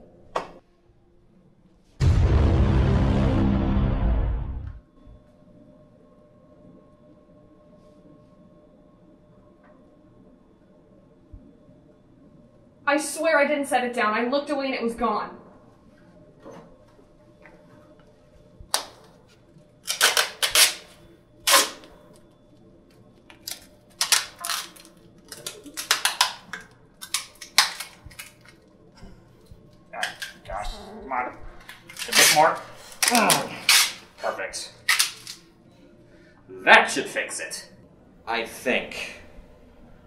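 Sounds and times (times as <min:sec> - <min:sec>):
faint steady hum: 0:04.4 - 0:40.0
plastic bag crinkling: 0:23.3 - 0:28.6.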